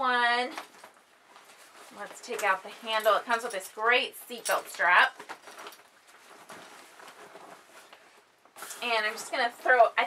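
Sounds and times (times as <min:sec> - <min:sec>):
nylon bag rustling: 0:04.5 - 0:10.0.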